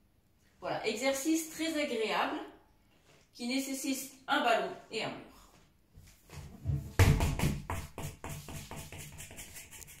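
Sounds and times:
gym ball bouncing on floor: 6.6 - 8.3.

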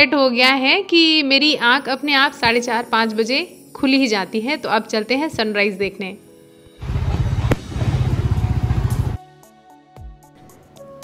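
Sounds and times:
firework bang: 6.8 - 8.8
fireworks crackling rumble: 6.8 - 9.2.

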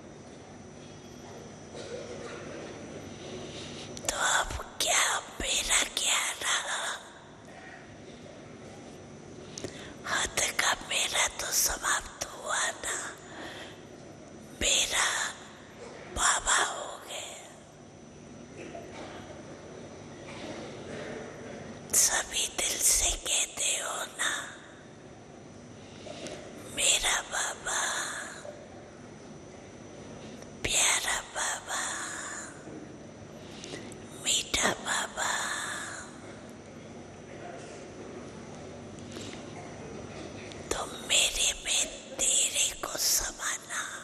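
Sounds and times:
elderly woman whispering: 4.0 - 7.7, 10.0 - 13.5, 14.6 - 17.7, 21.9 - 24.8, 26.7 - 28.6, 30.6 - 32.7, 34.2 - 36.2, 40.6 - 44.0.

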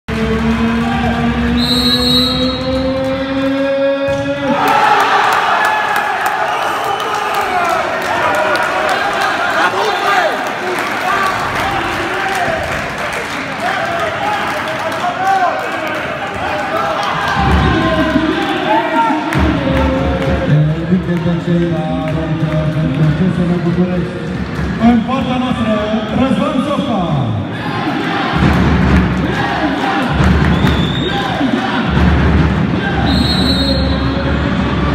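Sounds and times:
crowd shouting and chanting: 0.1 - 12.8, 13.4 - 21.1, 24.3 - 34.9
referee's whistle: 1.6 - 2.8, 30.5 - 31.3, 33.0 - 34.2
sharp claps and bangs: 10.4 - 18.6, 19.2 - 25.6, 28.3 - 33.5.

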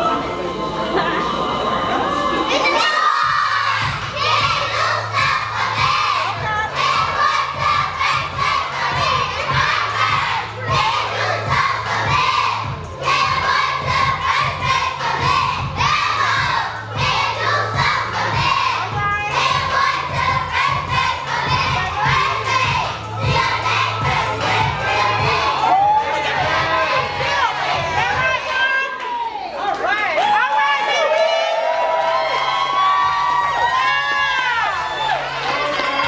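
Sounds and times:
children shouting and singing: 2.4 - 29.5
song with steady beat: 3.2 - 28.5.

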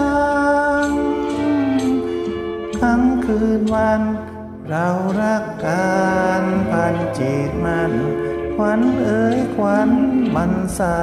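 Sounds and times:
karaoke backing track: 0.0 - 11.0
person singing slow ballad: 0.0 - 11.0.

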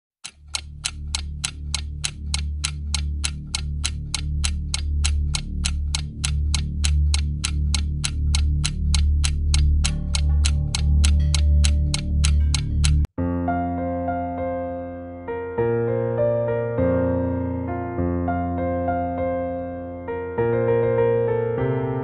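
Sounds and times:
clock ticking: 0.2 - 13.1
deep pulsing bass drone: 0.5 - 13.1.

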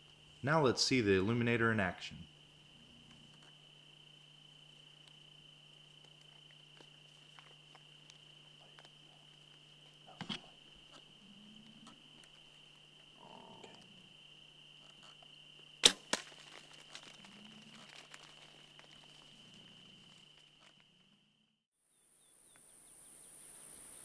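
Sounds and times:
high insect drone: 0.0 - 24.0
sharp bow crack: 15.8 - 16.7.

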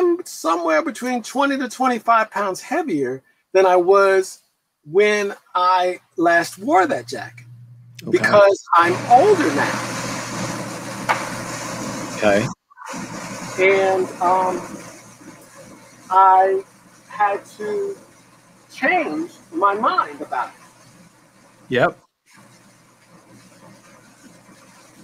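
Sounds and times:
air conditioner whirring: 4.9 - 25.0
low hum: 6.4 - 21.8.

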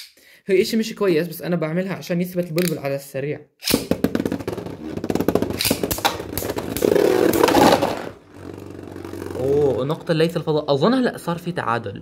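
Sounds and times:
spinning tops whirring: 5.6 - 10.5.

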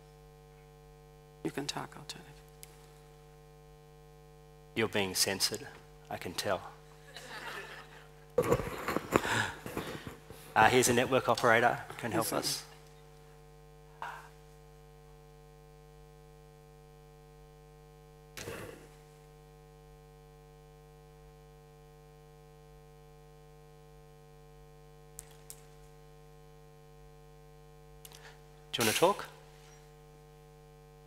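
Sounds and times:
electrical mains hum: 0.0 - 31.0.

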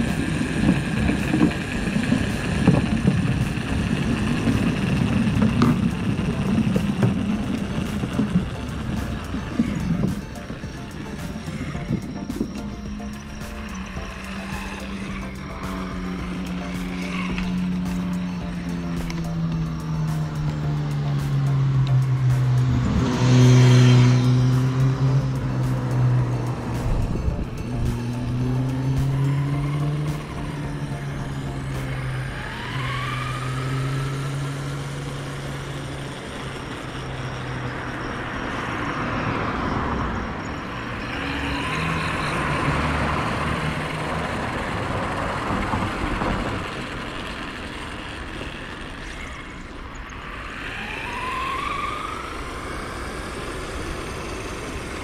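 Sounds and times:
electric motors whining: 0.0 - 55.0
tyre noise on paving: 0.0 - 55.0.

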